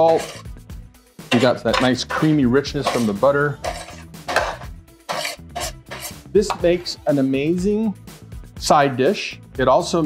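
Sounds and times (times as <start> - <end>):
metal spoon scraping sheet pan: 0.0 - 0.5, 1.3 - 7.0
faint background music: 0.0 - 10.0.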